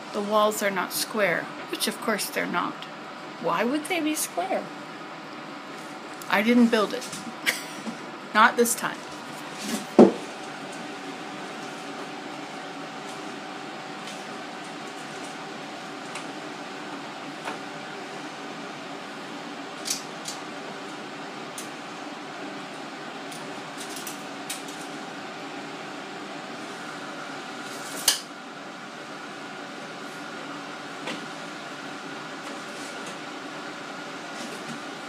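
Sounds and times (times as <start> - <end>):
steady mechanical hum: 0.0 - 35.0.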